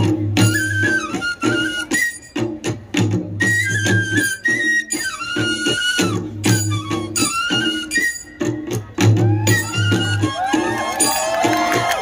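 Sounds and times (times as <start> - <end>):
flute melody: 0.0 - 12.0
steady drum beat: 8.3 - 12.0.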